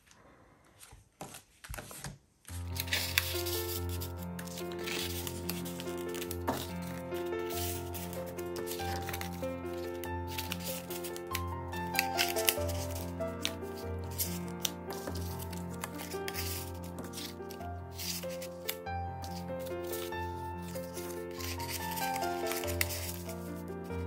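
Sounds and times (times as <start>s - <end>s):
paper cards clicking and rustling: 1.2s - 24.0s.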